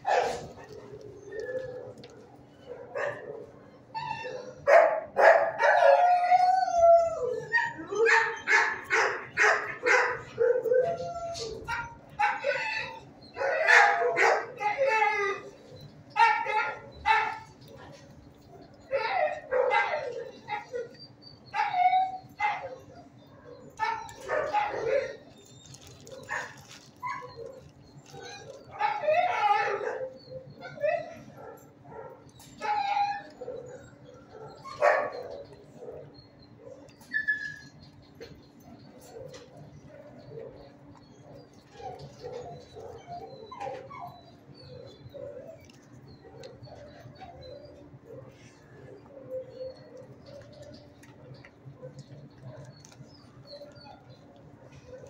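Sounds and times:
dogs barking: 0.0 - 6.8, 7.4 - 55.0.

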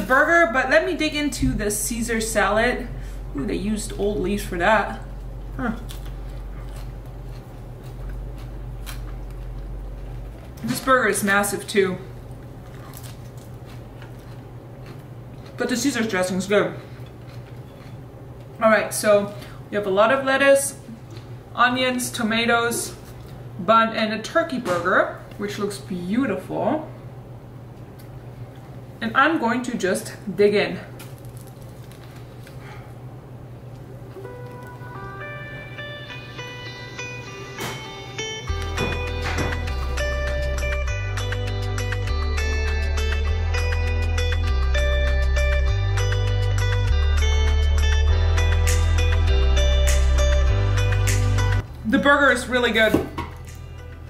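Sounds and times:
steady low hum: 0.0 - 54.0
lettuce being chewed: 5.0 - 10.7, 12.2 - 15.8, 16.9 - 18.6, 31.0 - 32.7
plucked guitar music: 34.2 - 51.6.

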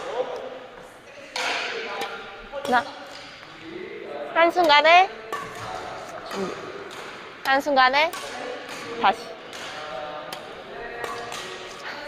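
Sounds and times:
racket striking shuttlecock: 1.3 - 3.4, 4.6 - 11.8.

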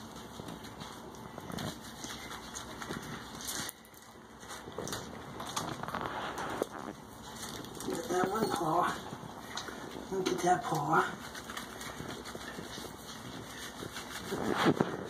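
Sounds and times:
wet fur rubbing and scrubbing: 0.0 - 15.0.

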